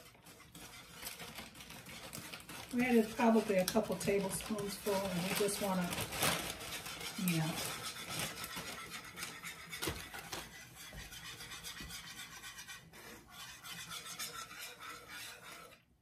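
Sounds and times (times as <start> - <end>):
whisk scraping a skillet: 0.0 - 16.0.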